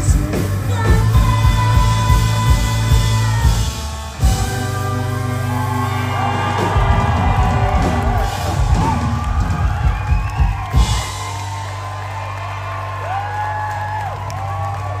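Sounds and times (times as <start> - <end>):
live rock band playing: 0.0 - 14.9
crowd cheering and whooping: 4.3 - 15.0.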